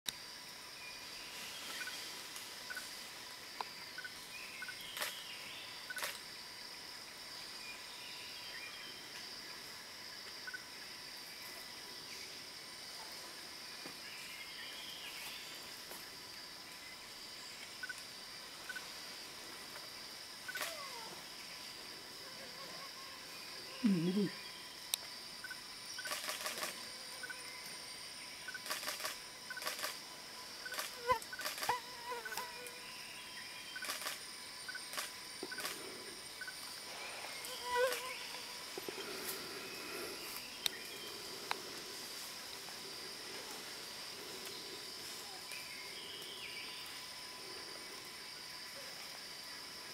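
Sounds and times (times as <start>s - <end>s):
insect chorus drone: 0.1s - 49.9s
sharp clicks: 26.0s - 26.8s, 28.5s - 30.0s.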